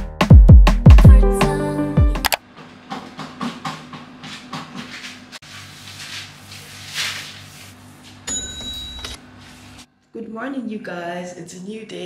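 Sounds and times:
paint stirring swishes: 3.0s - 8.2s.

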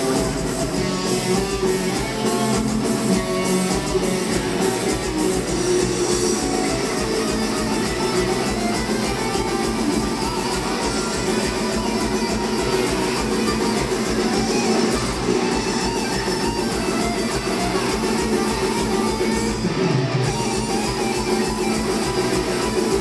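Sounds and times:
drum kit: 0.0s - 23.0s
electric guitars: 0.0s - 23.0s.

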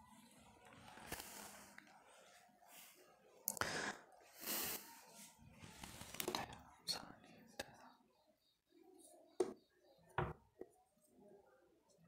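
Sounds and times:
whispered speech: 0.0s - 12.0s.

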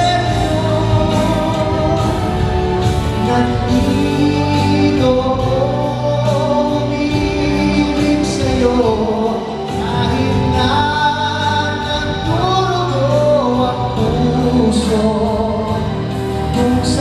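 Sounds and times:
instrumental accompaniment: 0.0s - 17.0s
man singing into microphone: 0.0s - 17.0s.

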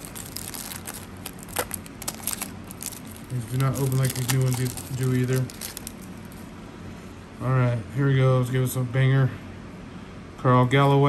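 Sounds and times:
paper wrapper crinkling: 0.0s - 6.5s.

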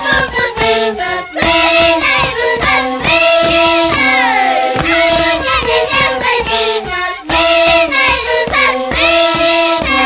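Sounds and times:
wooden flutes: 0.0s - 8.9s
women singing high-pitched: 0.0s - 10.0s
steady beat: 3.5s - 8.4s.

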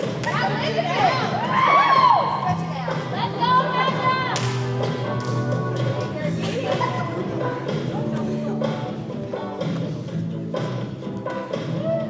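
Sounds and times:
crowd cheering and screaming: 1.0s - 2.5s.

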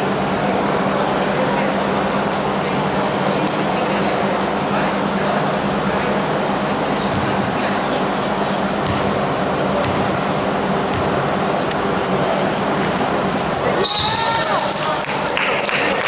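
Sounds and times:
sneakers squeaking on court: 0.0s - 0.4s, 1.2s - 3.6s, 12.7s - 14.2s
gym hall hum and murmur: 0.0s - 16.0s
basketball bouncing on wooden floor: 9.8s - 10.1s.

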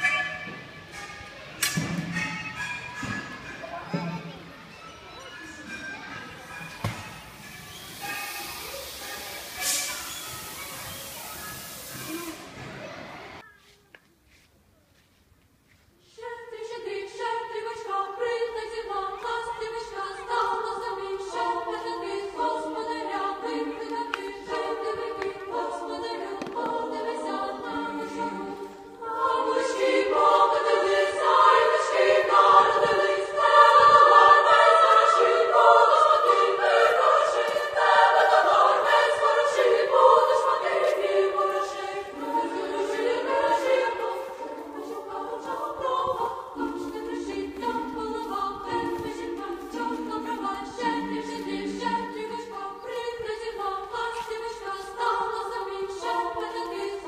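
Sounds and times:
choir singing a cappella: 0.0s - 1.1s, 16.1s - 57.0s.

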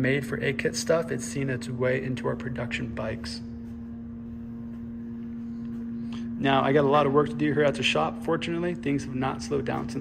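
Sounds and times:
constant background hum: 0.0s - 10.0s.

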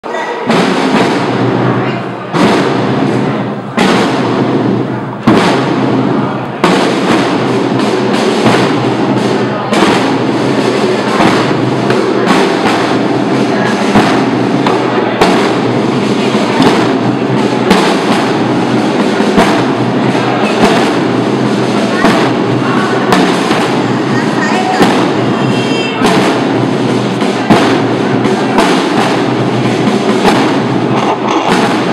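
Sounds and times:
drum and bugle band march: 0.0s - 31.9s
heavy drum strikes: 0.0s - 31.9s.

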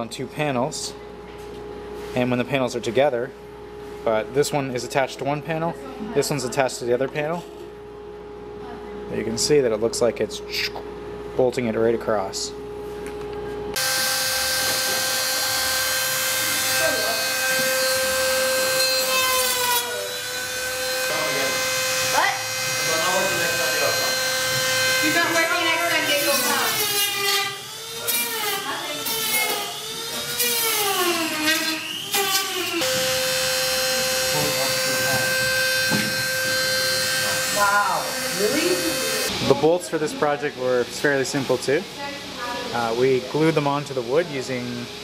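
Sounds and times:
electronic drone hum: 13.7s - 26.8s, 32.8s - 39.3s
wailing wavering tones: 13.8s - 26.8s, 32.7s - 39.3s.

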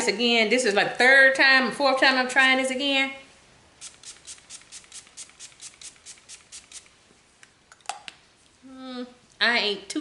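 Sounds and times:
spray pump hisses: 3.8s - 6.9s.

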